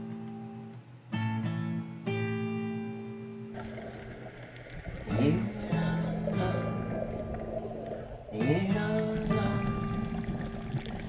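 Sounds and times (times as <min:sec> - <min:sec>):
low rumbling noise: 0:03.6 - 0:11.0.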